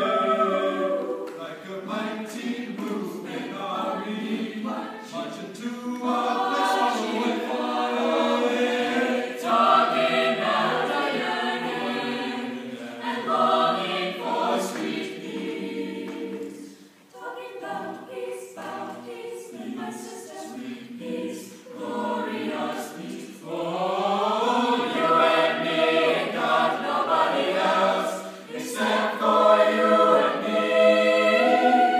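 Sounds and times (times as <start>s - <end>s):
mixed choir singing: 0.0s - 31.9s.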